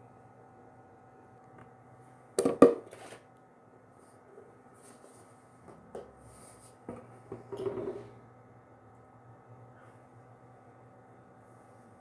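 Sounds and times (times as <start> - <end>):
objects knocking on countertop: 2.4 - 2.8.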